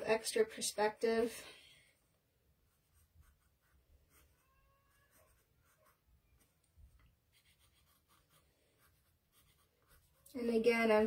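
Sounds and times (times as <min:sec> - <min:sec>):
pencil scratching on paper: 0:02.6 - 0:10.7.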